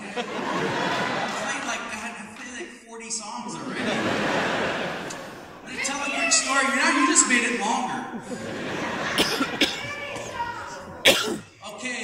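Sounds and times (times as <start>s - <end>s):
indistinct talking: 3.4s - 12.0s
short coughs: 9.1s - 10.0s, 11.0s - 11.5s.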